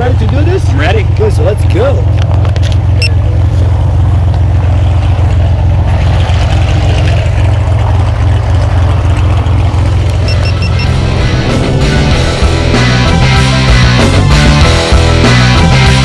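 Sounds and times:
propeller aircraft engine drone: 0.0s - 16.0s
background music: 10.4s - 16.0s.

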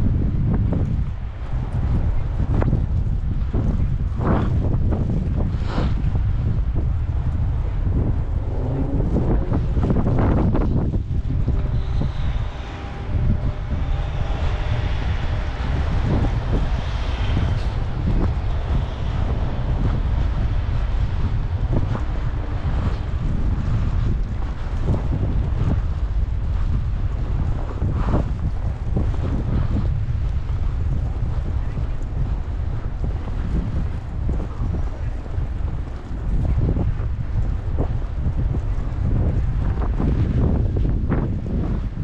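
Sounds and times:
wind buffeting microphone: 0.0s - 42.0s.

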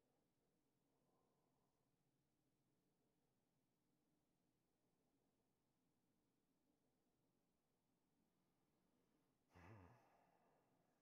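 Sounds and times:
man sighing: 9.6s - 10.0s.

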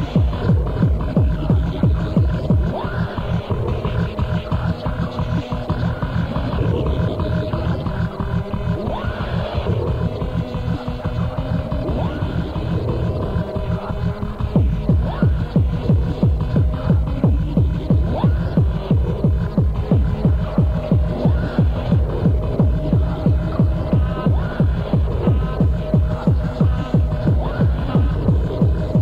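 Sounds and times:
fast kick drum: 0.0s - 29.0s
low throbbing drone: 0.0s - 29.0s.

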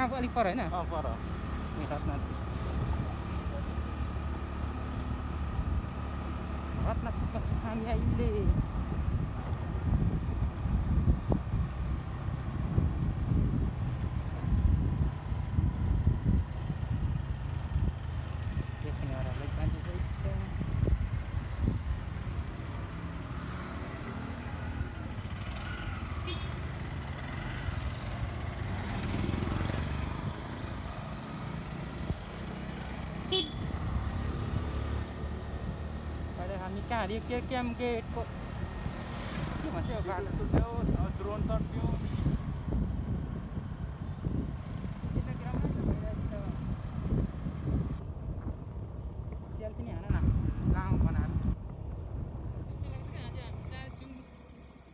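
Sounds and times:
wind rumble on microphone: 6.7s - 23.3s, 37.8s - 54.1s
motorcycle engine running: 24.4s - 34.8s.

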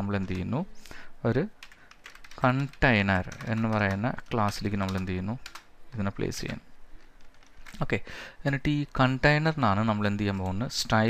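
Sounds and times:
keyboard typing: 1.6s - 10.8s
man talking: 2.4s - 6.6s, 7.8s - 11.0s.

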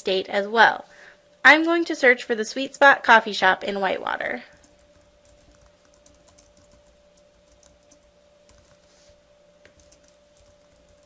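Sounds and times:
faint steady hum: 0.0s - 11.0s
keyboard typing: 4.5s - 8.9s, 9.6s - 11.0s.

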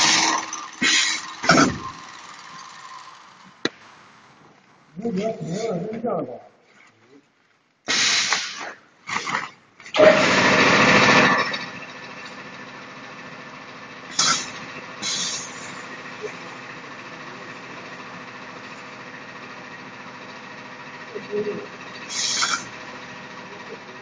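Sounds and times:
hissing bursts of air: 0.0s - 3.1s, 7.8s - 9.5s, 14.1s - 16.8s, 21.9s - 23.3s
steady machine hum: 0.0s - 5.8s, 8.9s - 24.0s.

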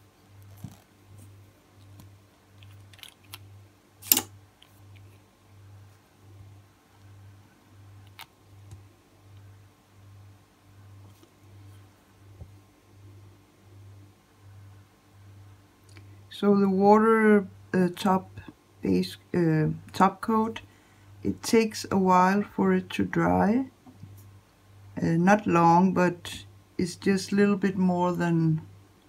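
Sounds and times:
faint pulsing low hum: 0.0s - 29.0s.

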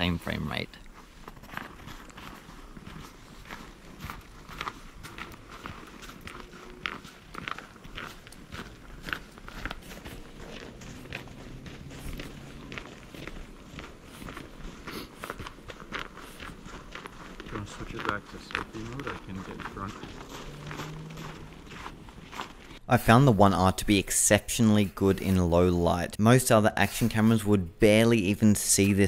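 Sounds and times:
footsteps crunching in snow: 0.0s - 22.8s.

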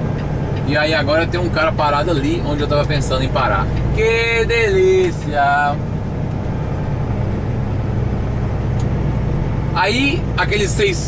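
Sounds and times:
truck diesel engine droning: 0.0s - 11.0s.

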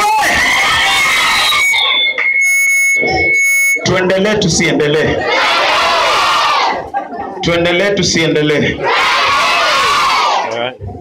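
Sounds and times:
crowd cheering: 0.0s - 2.4s, 5.2s - 6.9s, 8.8s - 10.6s.

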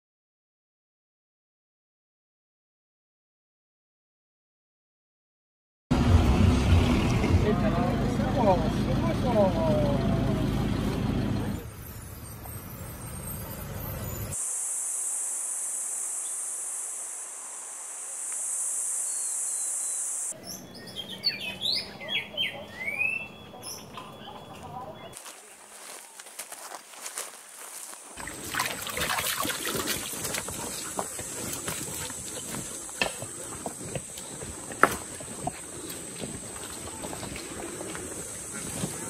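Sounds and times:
loud rushing rumbling noise: 5.9s - 9.0s
high-pitched insect buzz: 11.7s - 20.4s
wavering calls: 19.1s - 25.2s
birds chirping: 19.1s - 26.2s, 29.6s - 39.0s.

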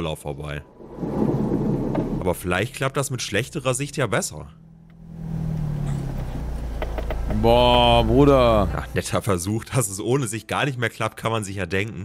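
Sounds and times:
car engine and road noise: 0.7s - 9.4s.

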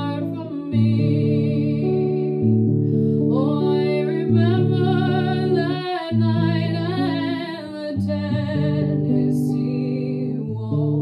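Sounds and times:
guitar chords: 0.0s - 11.0s
woman singing with vibrato: 0.0s - 11.0s.

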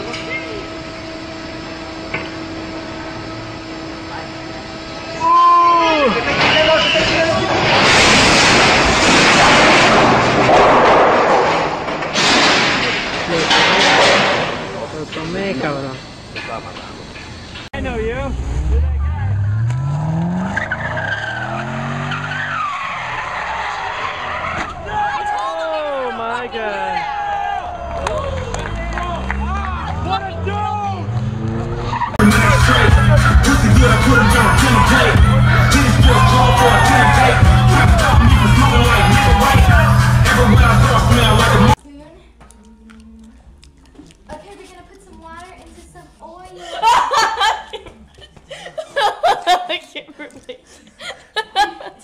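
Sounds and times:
tires squealing: 0.0s - 14.9s, 16.0s - 41.8s
crane machinery hum: 0.0s - 22.2s, 23.2s - 41.8s
car engine revving: 17.8s - 24.9s, 27.6s - 41.8s
murmur of voices: 32.2s - 41.8s.

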